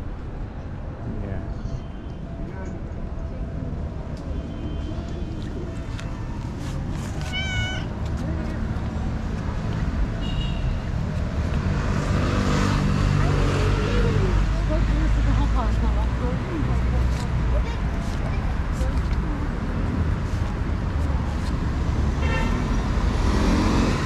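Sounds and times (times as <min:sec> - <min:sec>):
cats meowing: 0:07.2 - 0:08.0.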